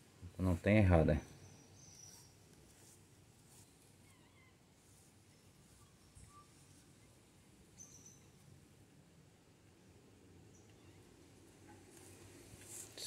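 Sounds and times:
faint background hiss: 0:00.0 - 0:13.0.

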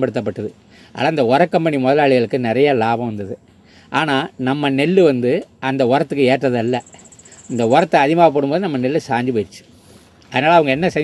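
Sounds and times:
man speaking: 0:00.0 - 0:09.7, 0:10.3 - 0:11.0
cricket trilling: 0:06.1 - 0:09.0.

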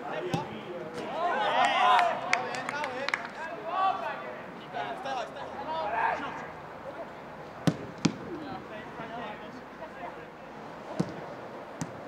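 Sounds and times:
players shouting and calling: 0:00.0 - 0:12.0
football kicks: 0:07.6 - 0:08.2, 0:11.0 - 0:11.2, 0:11.8 - 0:12.0.

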